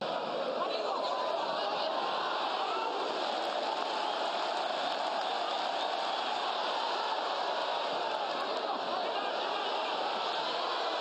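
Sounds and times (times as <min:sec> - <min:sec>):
stadium crowd din: 0:00.0 - 0:11.0.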